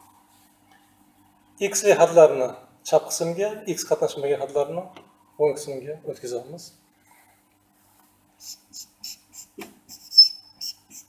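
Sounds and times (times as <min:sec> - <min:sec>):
marker squeaking on whiteboard: 0:08.4 - 0:11.0.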